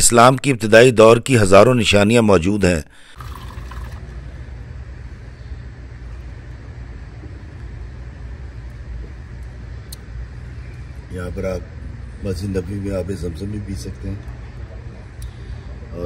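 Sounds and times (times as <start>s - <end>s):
low rumble of indoor hall: 3.3s - 16.0s.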